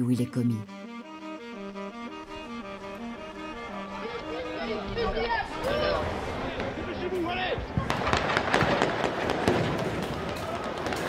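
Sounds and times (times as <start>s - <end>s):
rapid gunfire: 7.9s - 11.0s.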